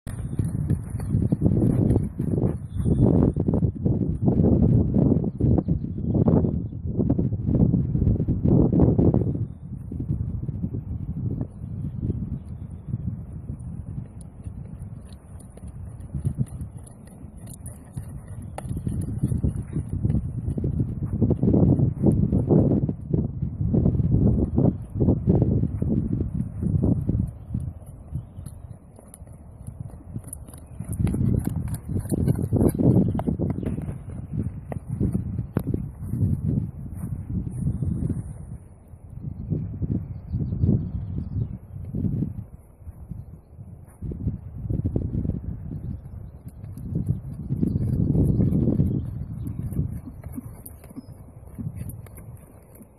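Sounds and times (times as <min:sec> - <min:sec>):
muffled hoofbeats on soft ground: 0:00.0 - 0:52.9
wind buffeting microphone: 0:00.0 - 0:52.9.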